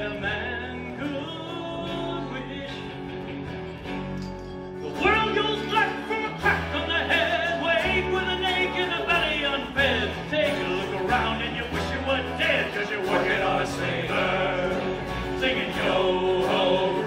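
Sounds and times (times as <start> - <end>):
acoustic and electric guitars: 0.0 - 17.0
band singing: 4.8 - 17.0.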